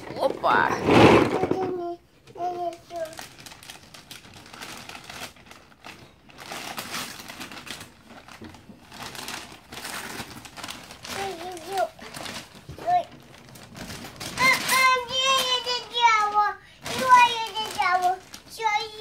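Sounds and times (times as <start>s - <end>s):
wrapping paper tearing and crinkling: 0.8s - 19.0s.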